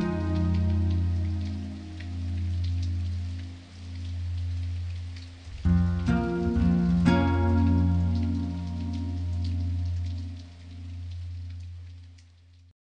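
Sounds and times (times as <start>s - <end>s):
low droning chords: 0.0s - 11.7s.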